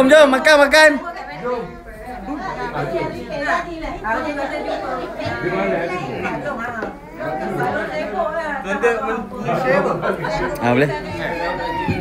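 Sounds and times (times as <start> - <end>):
indistinct chatter: 0.0 - 12.0.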